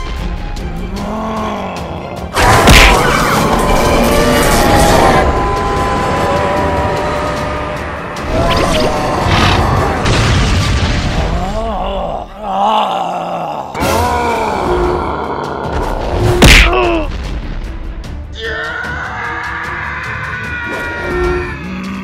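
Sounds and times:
background music: 0.0 - 22.0
ground-smashing blast: 9.7 - 11.5
wavering voice-like cry: 18.4 - 22.0.

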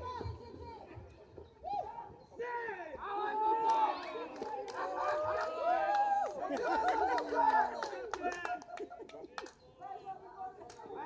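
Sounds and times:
people shouting and calling out: 0.0 - 11.0.

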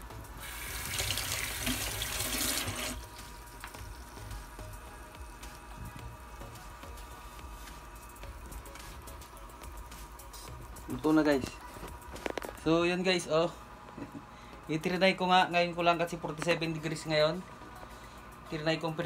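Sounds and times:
faint steady hum: 0.0 - 19.0
water running: 0.3 - 4.5.

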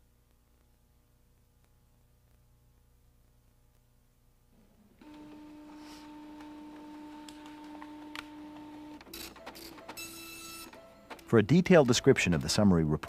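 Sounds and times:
printer hum with clicks: 5.0 - 12.6.

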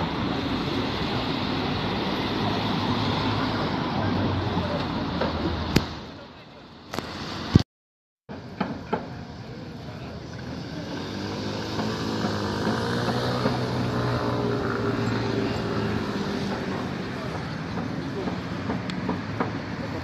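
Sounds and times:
outdoor background noise: 0.0 - 7.6, 8.3 - 20.0.

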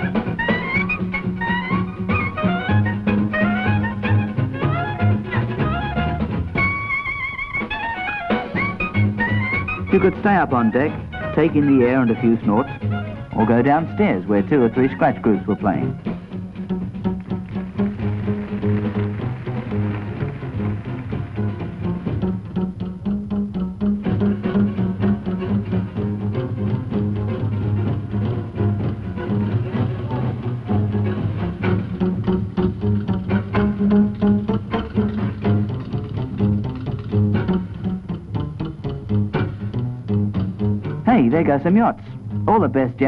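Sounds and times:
jazz band playing: 0.0 - 42.8.

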